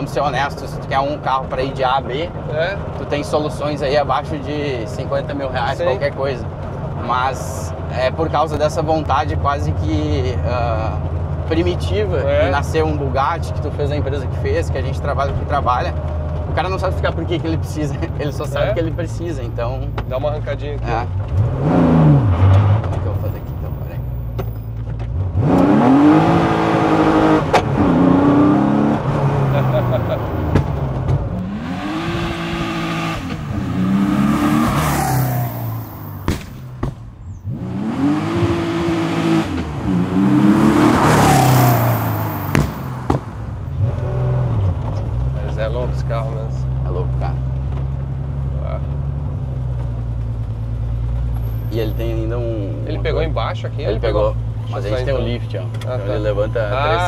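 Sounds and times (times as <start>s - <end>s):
car engine accelerating hard: 0.0s - 36.7s, 37.3s - 57.0s.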